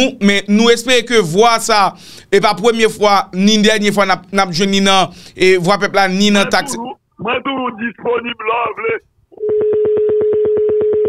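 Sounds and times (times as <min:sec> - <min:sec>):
buzzy telephone tone: 0:09.4 - 0:11.0.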